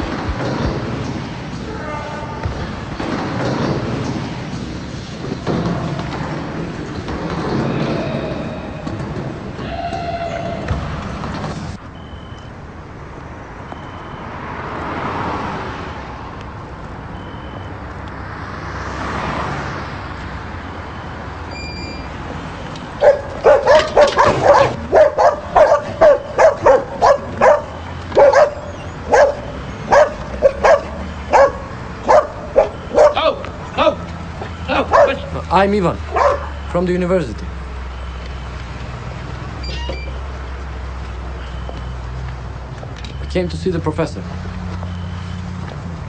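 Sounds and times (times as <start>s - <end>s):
rushing noise: 0.0s - 11.8s
dog barking: 23.0s - 33.3s, 34.8s - 35.3s, 36.1s - 36.7s.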